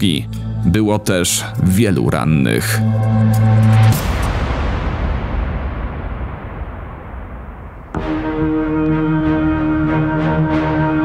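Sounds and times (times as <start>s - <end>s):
sustained music notes: 0.0s - 5.5s, 7.6s - 11.0s
low even rumbling: 0.6s - 8.9s.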